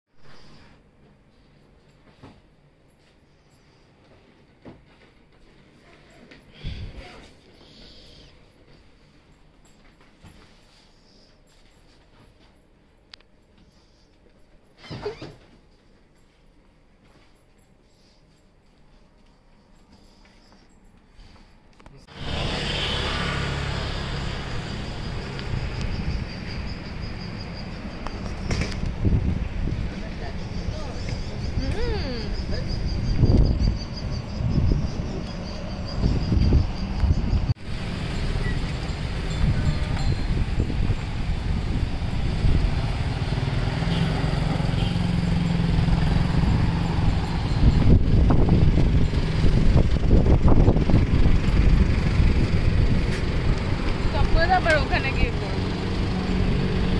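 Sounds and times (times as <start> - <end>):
traffic and scooters: 22.0 - 56.9.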